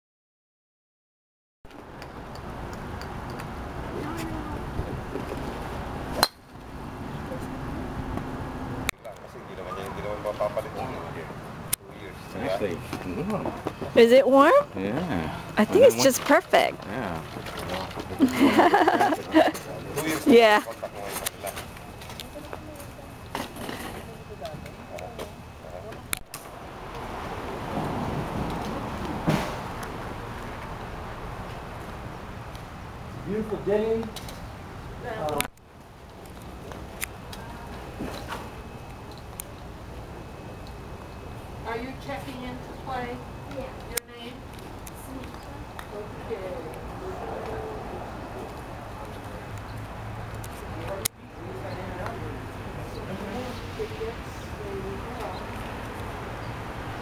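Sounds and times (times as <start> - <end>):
people talking outdoors: 3.6 - 57.0
faint distant voices: 41.6 - 57.0.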